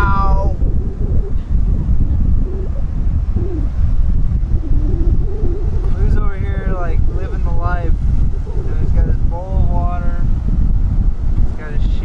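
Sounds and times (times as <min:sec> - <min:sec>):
person speaking: 0:00.0 - 0:00.6
wind buffeting microphone: 0:00.0 - 0:12.0.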